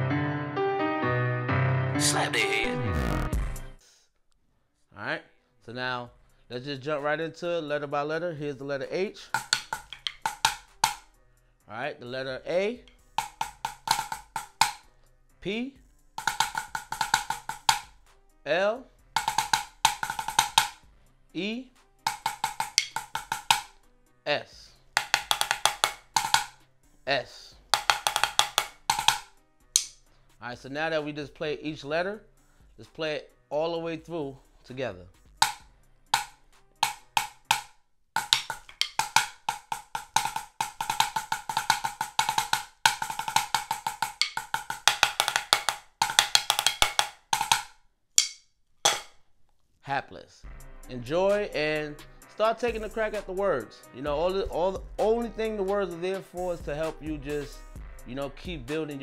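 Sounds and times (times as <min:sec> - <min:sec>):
drumsticks on practice pad: 0:09.2 - 0:11.1, 0:12.8 - 0:14.9, 0:16.2 - 0:17.9, 0:19.2 - 0:20.8, 0:22.1 - 0:23.8, 0:25.0 - 0:26.6, 0:27.8 - 0:30.0, 0:35.4 - 0:35.6, 0:36.2 - 0:49.2.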